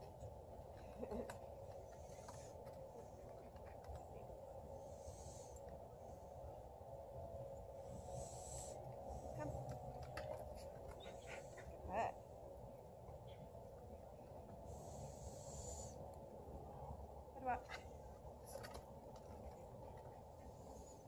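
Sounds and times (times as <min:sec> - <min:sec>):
faint background hum: 0:00.0 - 0:21.0.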